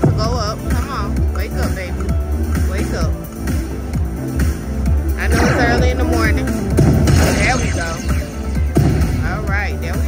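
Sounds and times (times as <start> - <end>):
slot machine bonus music: 0.0 - 10.0
sharp hits: 5.2 - 9.4.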